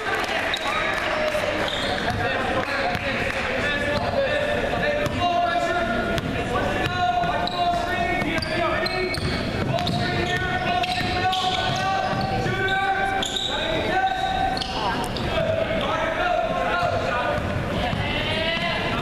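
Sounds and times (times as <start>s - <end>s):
indistinct shouting and chatter: 0.0s - 19.0s.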